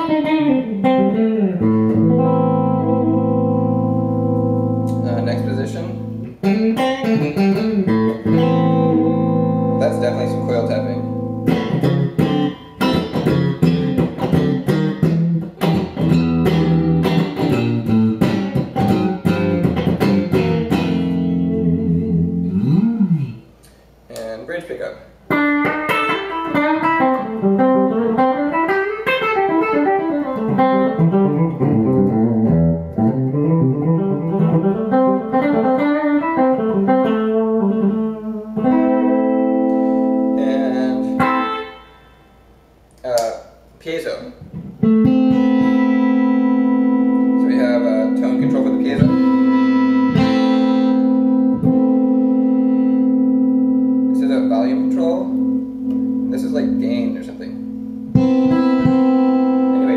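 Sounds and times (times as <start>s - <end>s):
clean electric guitar: 0.0s - 59.9s.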